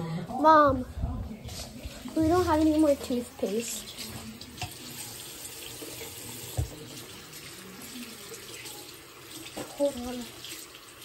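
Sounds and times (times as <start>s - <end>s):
tap running into sink: 3.9s - 7.2s.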